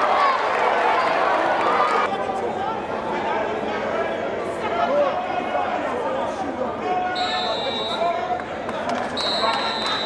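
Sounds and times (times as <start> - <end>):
people shouting and talking: 0.0 - 10.0
whistle blown: 7.2 - 8.1, 9.2 - 10.0.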